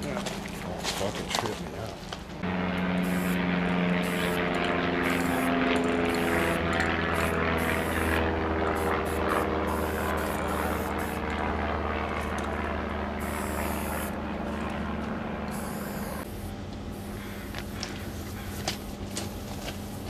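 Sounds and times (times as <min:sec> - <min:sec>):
engine drone: 0:00.0 - 0:20.0.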